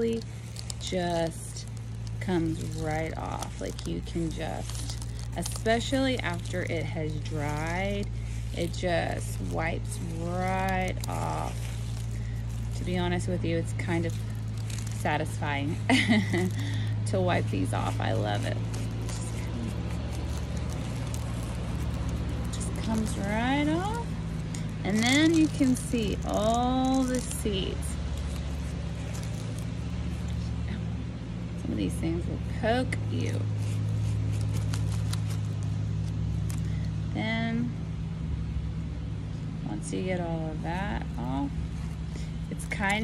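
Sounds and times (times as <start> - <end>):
fingertip rubbing seeds: 0.0 - 30.7, 32.9 - 36.8
road traffic rumble: 0.0 - 43.0.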